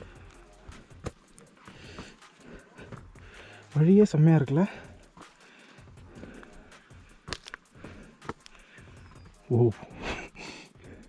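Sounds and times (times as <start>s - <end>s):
footsteps on dry leaves and stone: 0.0s - 10.1s
faint music: 0.0s - 11.0s.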